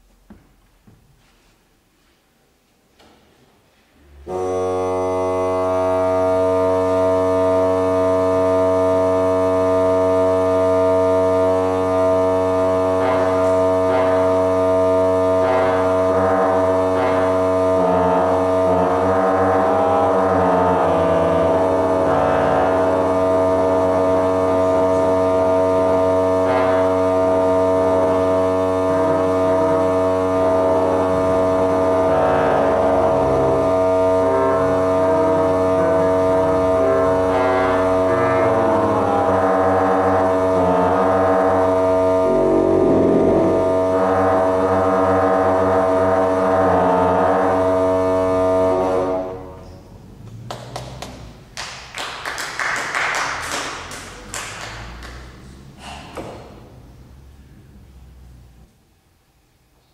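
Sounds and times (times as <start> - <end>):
pipe organ chords: 4.0 - 51.5
low organ drone: 4.0 - 58.8.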